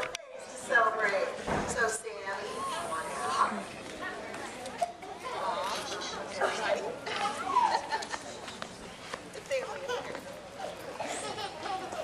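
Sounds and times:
children and adults chattering: 0.0 - 12.0.

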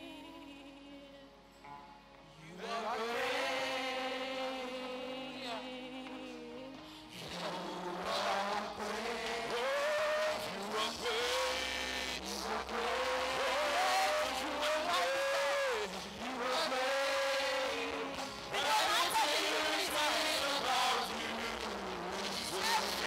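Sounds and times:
woman singing into a microphone: 0.0 - 1.4, 2.4 - 11.6, 12.4 - 23.0.

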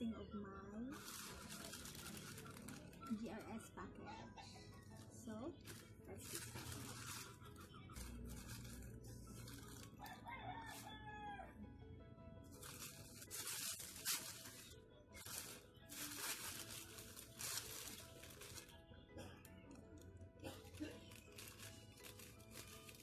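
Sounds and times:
plastic mailer crinkling: 1.0 - 3.4, 5.6 - 11.0, 12.5 - 18.8, 20.6 - 23.0
rooster crowing: 10.0 - 11.6.

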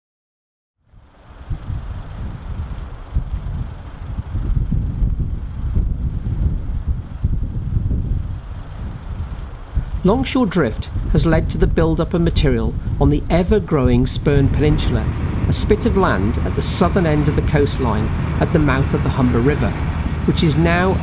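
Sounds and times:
wind buffeting microphone: 0.9 - 21.0.

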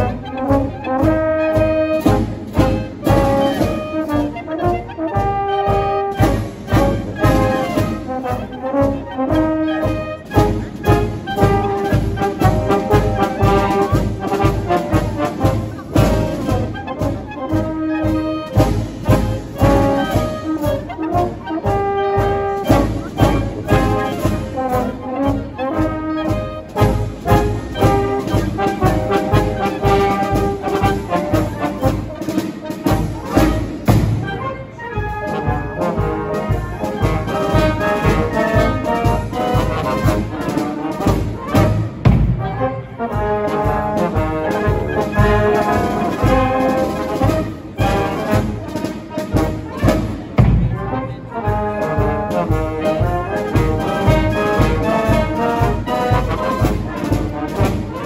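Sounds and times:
wind band playing: 0.0 - 58.0.

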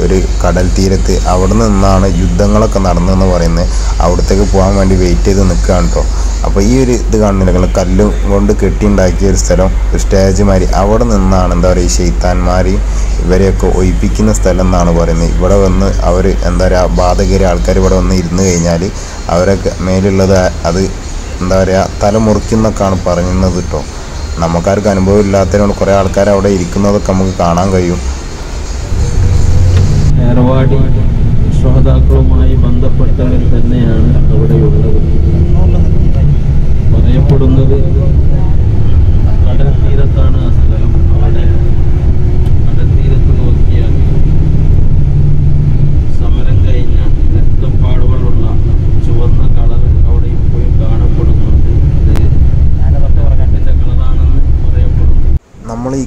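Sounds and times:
bus engine and road rumble: 23.8 - 55.5.

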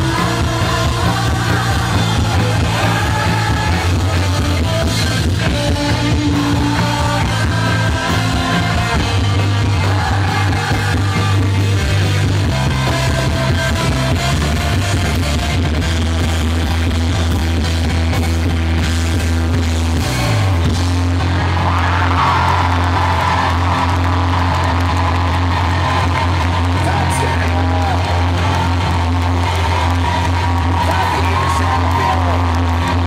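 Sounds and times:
male lead singer: 0.0 - 17.8, 25.6 - 33.0
live rock band playing: 0.0 - 33.0.

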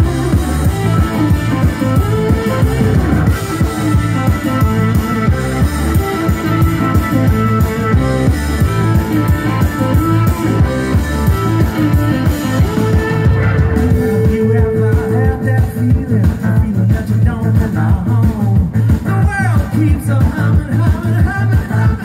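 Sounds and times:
blues-rock band playing: 0.0 - 22.0.

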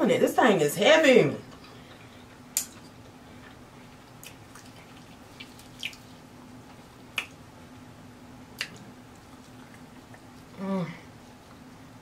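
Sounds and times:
faint steady hum: 0.0 - 12.0
wet chewing mouth clicks: 4.1 - 6.1, 8.6 - 10.4.

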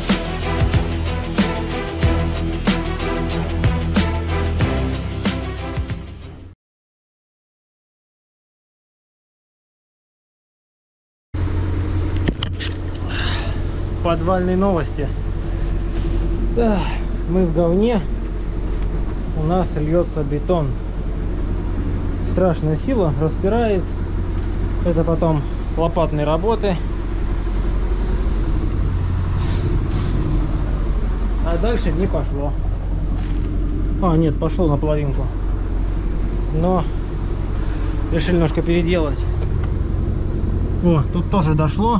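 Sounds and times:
diesel engine rumbling: 0.0 - 6.3, 11.4 - 41.9
brief hissing: 29.4 - 30.3.

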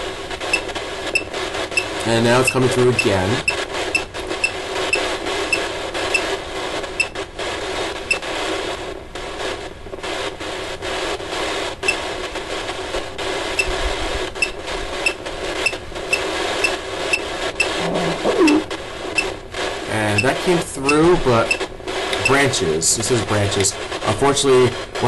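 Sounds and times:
crackling static hiss: 0.0 - 25.0
short high beeps: 1.2 - 4.1, 14.4 - 17.8, 22.2 - 22.4.

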